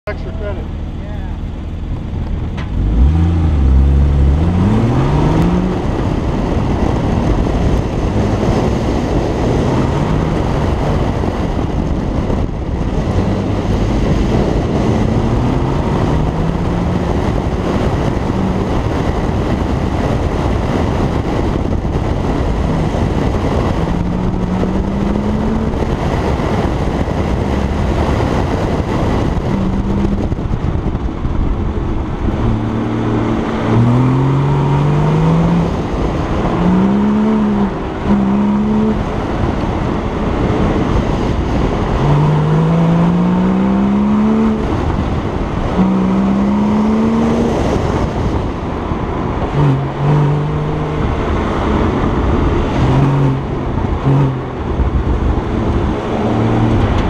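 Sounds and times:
car engine accelerating: 0.0s - 57.0s
wind and road noise: 0.0s - 57.0s.

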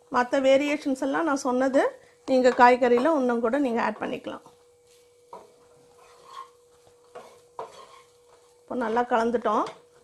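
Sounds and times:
spatula scraping a pan: 2.3s - 10.0s.

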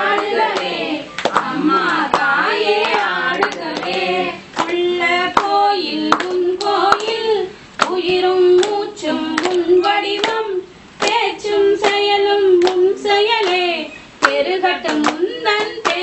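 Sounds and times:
hands clapping a steady beat: 0.0s - 16.0s
women singing together: 0.0s - 16.0s.

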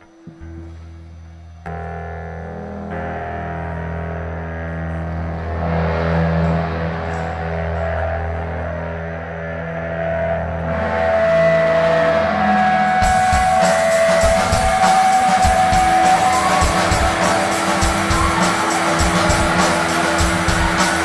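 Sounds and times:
sustained electric guitar notes: 0.0s - 21.0s
rock band playing loud: 9.5s - 21.0s.

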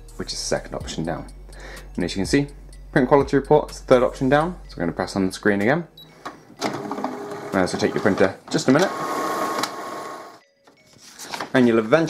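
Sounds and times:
printer whirring: 6.6s - 10.4s.

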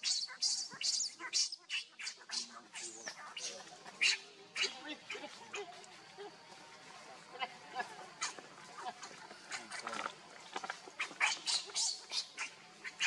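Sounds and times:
baby monkey screaming: 0.0s - 5.6s, 11.0s - 13.0s.

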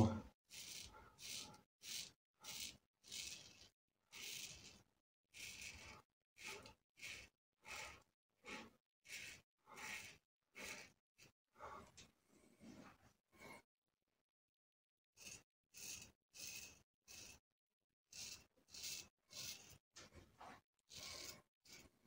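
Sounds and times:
razor scraping stubble: 5.4s - 11.3s, 15.2s - 17.4s, 18.1s - 19.8s, 20.9s - 22.0s.

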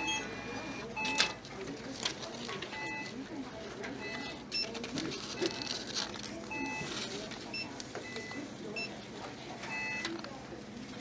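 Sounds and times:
store background noise: 0.0s - 11.0s.

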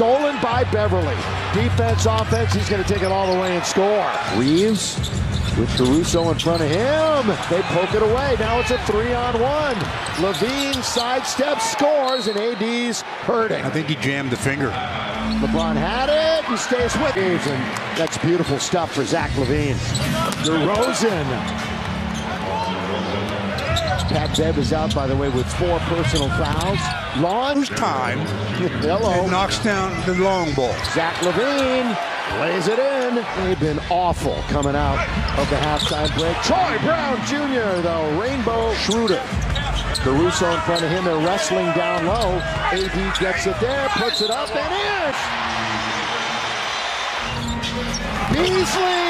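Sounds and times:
crowd noise: 0.0s - 49.0s
arena music: 14.4s - 17.6s, 34.8s - 49.0s.

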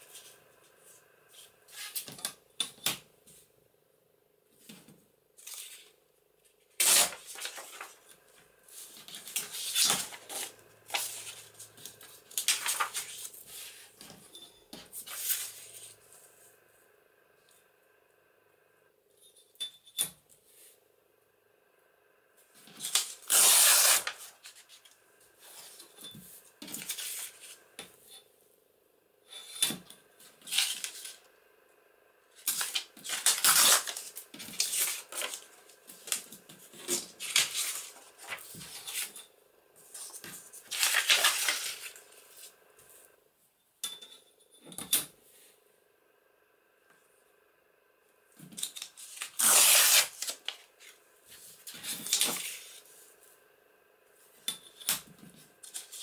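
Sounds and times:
paper tearing: 6.8s - 8.0s, 22.8s - 24.6s, 32.4s - 35.4s, 40.0s - 42.0s, 49.0s - 50.6s.

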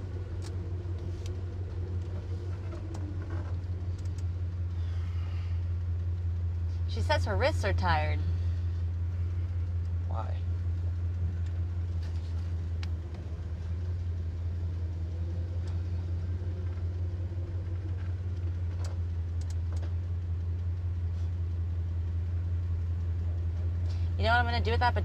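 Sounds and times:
car engine drone: 0.0s - 25.0s
road noise: 0.0s - 25.0s
faint ticks: 17.7s - 24.1s.

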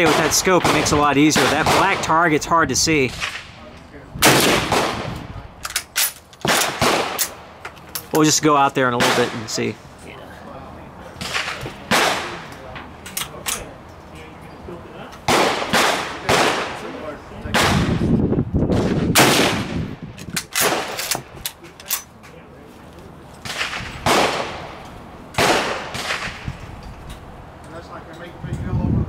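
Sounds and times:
rifle shots echoing: 0.0s - 2.3s, 4.2s - 5.2s, 6.4s - 7.4s, 9.0s - 9.5s, 11.2s - 12.5s, 15.3s - 16.8s, 18.8s - 19.8s, 23.4s - 24.8s, 25.4s - 26.4s.

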